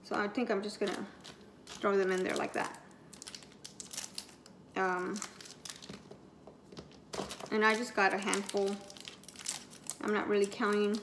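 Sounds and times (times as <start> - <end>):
plastic wrappers crinkling: 0.7 - 11.0.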